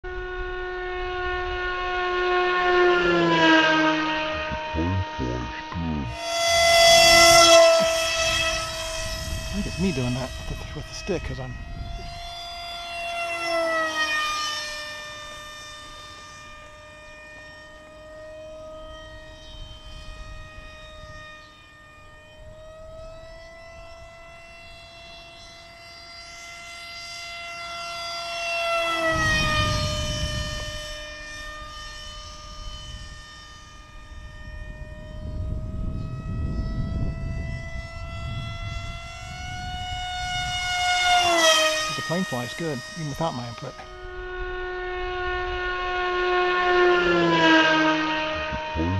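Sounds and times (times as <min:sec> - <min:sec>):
model airplane motor whine: 0:00.0 - 0:48.9.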